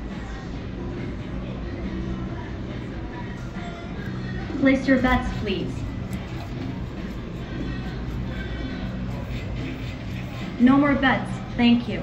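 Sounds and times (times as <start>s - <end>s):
constant low hum: 0.0s - 12.0s
faint music: 0.0s - 12.0s.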